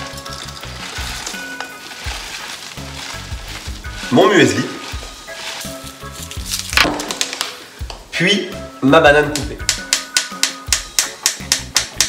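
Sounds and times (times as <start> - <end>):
muesli rustling into bowl: 0.0 - 7.6
background music: 0.0 - 12.0.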